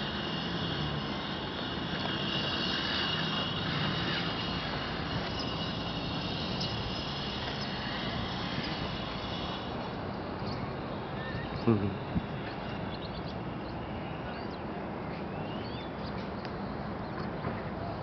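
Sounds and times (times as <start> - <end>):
distant engine droning: 0.0 - 18.0.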